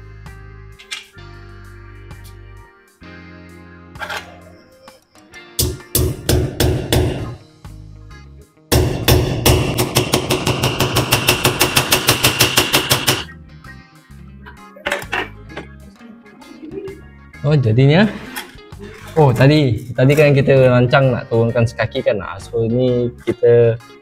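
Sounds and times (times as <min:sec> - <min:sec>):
hammer driving nails: 0:05.6 - 0:07.4, 0:08.7 - 0:13.3.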